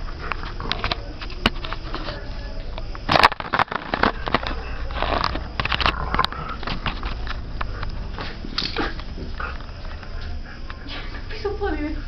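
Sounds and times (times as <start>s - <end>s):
dog sniffing and breathing noisily: 6.0s - 12.0s.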